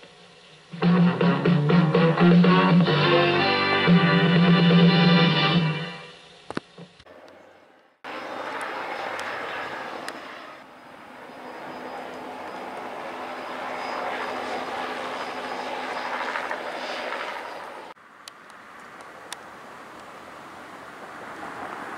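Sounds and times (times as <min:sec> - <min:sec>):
guitar music: 0:00.8 - 0:06.1
helicopter passing overhead: 0:08.0 - 0:18.0.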